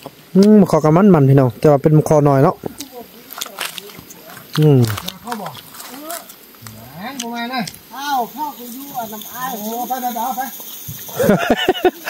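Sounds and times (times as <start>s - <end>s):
person talking: 0.4s - 12.0s.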